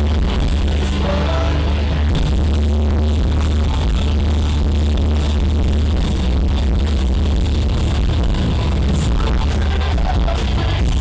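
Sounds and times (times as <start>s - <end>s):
electric guitar: 0.0s - 11.0s
heavy distorted bass: 0.0s - 11.0s
live rock band playing: 0.0s - 11.0s.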